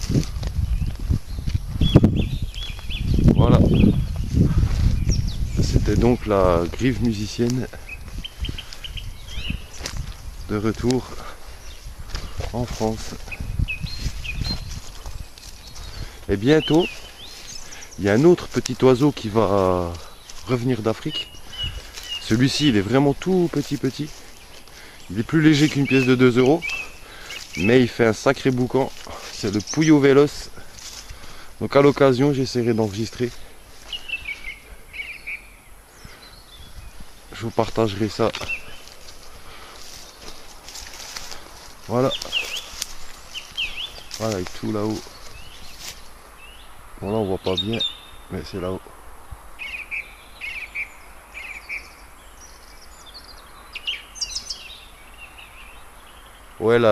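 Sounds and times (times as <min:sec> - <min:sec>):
dull low thumps: 0:00.0 - 0:07.2, 0:07.9 - 0:16.4.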